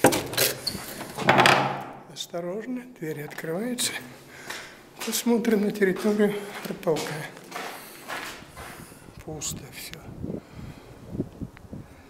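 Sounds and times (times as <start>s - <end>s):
wooden door creaking open: 0.0s - 2.1s.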